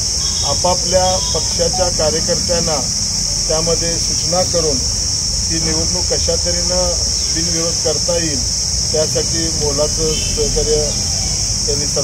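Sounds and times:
man speaking: 0:00.6 - 0:02.9
steady high-pitched drone: 0:01.0 - 0:02.4.

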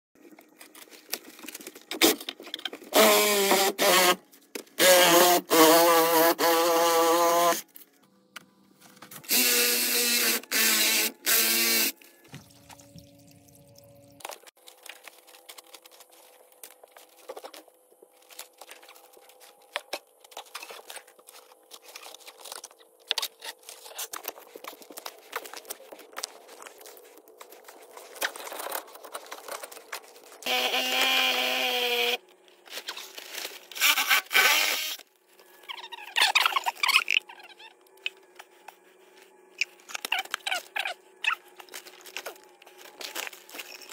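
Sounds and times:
power tool whining on pipe: 0:30.4 - 0:32.2.

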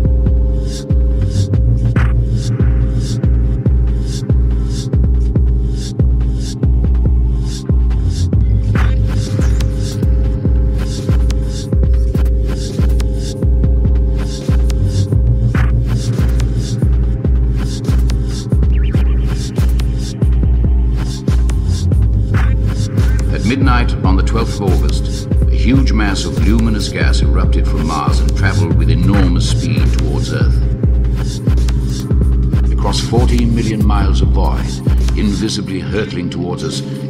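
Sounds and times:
pulsing sub-bass: 0:00.0 - 0:35.2
low synth drone: 0:00.0 - 0:37.0
hi-hat ticks: 0:08.8 - 0:35.5.

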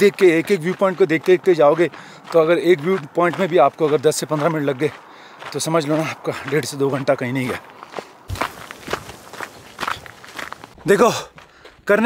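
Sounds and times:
footsteps on dirt trail: 0:00.0 - 0:12.0.

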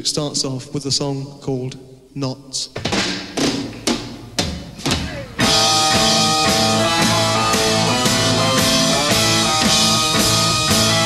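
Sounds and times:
rock band playing loudly: 0:05.0 - 0:11.0.

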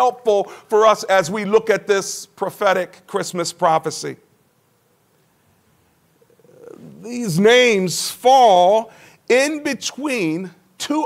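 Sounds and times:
man speaking: 0:00.0 - 0:04.2, 0:06.5 - 0:11.0
man breathing: 0:08.9 - 0:09.2.

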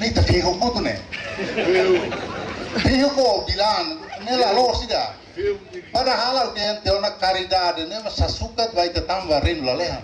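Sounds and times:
background chatter: 0:00.0 - 0:10.0
man talking into a microphone: 0:00.0 - 0:10.0.

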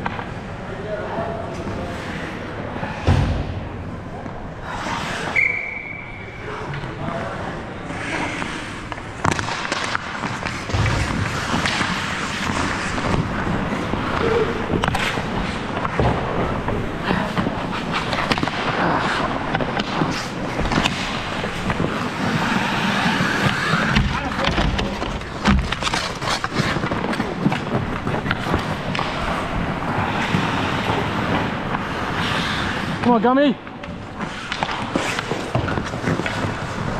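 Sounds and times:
hockey sticks and puck clacking: 0:00.0 - 0:00.5, 0:07.9 - 0:36.9
skate blades scraping on ice: 0:04.6 - 0:06.0, 0:07.4 - 0:36.9.

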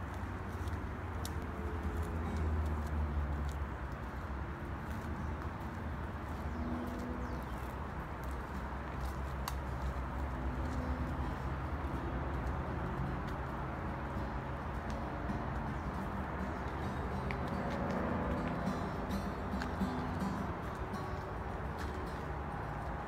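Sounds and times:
faint clicks and taps: 0:00.1 - 0:05.8, 0:07.0 - 0:23.0.

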